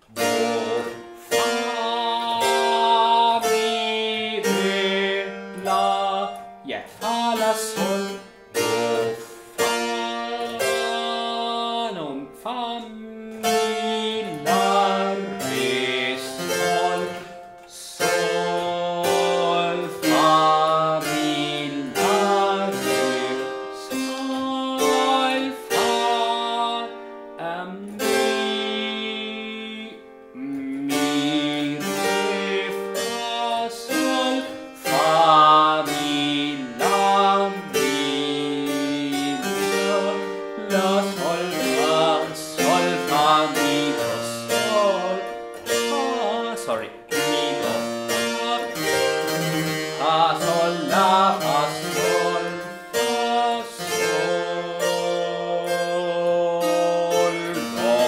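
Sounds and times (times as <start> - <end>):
harpsichord playing: 0.0 - 58.0
man singing: 0.0 - 58.0.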